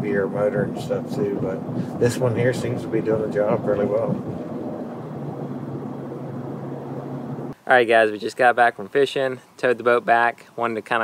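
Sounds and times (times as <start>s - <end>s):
low engine hum: 0.0s - 7.6s
road noise: 0.0s - 8.0s.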